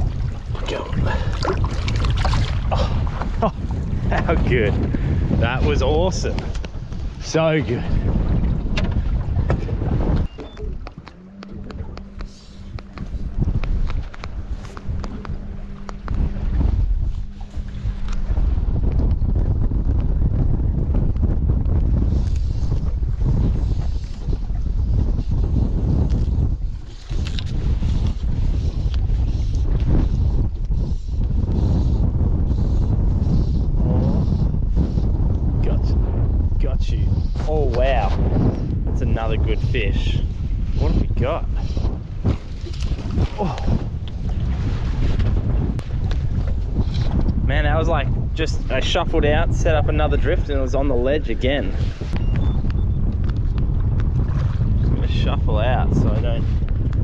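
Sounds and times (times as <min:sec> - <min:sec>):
gusty wind buffeting microphone: 0:00.0 - 0:57.0
steady low hum: 0:07.9 - 0:21.4.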